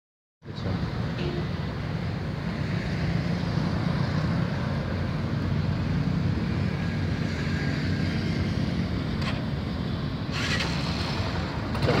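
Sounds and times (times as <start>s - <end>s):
road traffic rumble: 0.4s - 12.0s.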